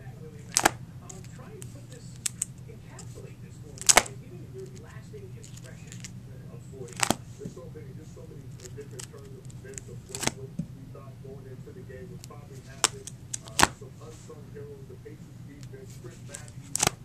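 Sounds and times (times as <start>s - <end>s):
steady low hum: 0.0s - 17.0s
plastic binder pages snapping: 0.4s - 2.5s, 3.8s - 6.1s, 6.9s - 7.2s, 8.6s - 10.4s, 12.6s - 13.8s, 15.6s - 17.0s.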